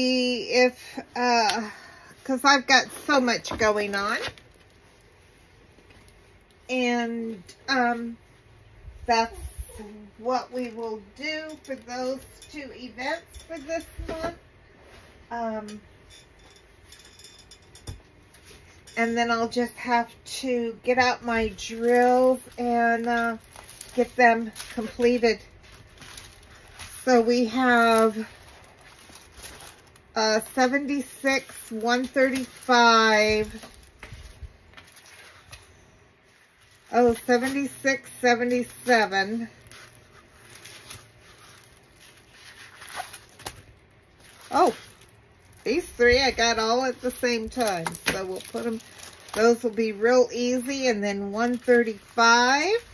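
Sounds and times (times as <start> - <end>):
paper and plastic film rustling: 1.5 - 6.6, 20.9 - 52.9.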